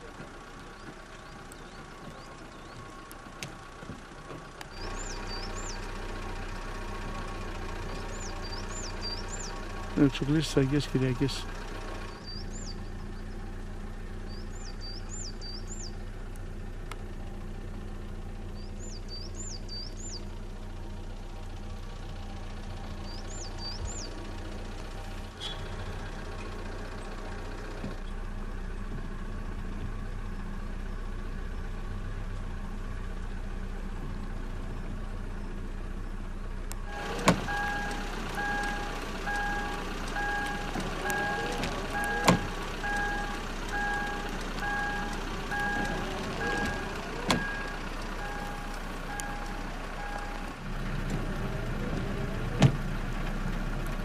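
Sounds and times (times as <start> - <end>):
car engine and road hum: 0.0 - 54.0.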